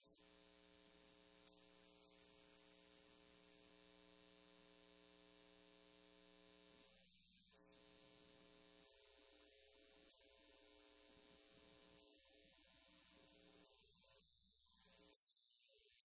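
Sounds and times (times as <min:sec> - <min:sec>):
steady electrical hum: 0:00.0 - 0:07.0, 0:07.6 - 0:13.7.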